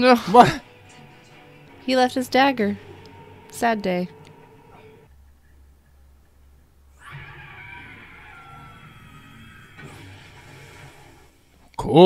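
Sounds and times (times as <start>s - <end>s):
slowly shifting musical score: 0.0s - 11.8s.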